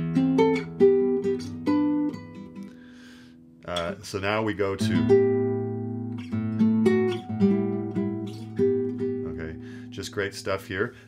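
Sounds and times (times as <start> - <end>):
fingerpicked nylon-string guitar: 0.0 - 11.0.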